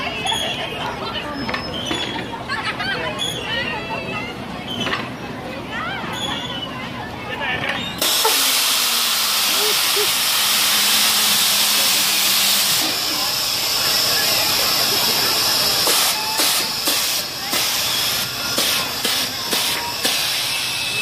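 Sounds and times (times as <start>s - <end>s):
compressed air hissing: 8.0s - 20.9s.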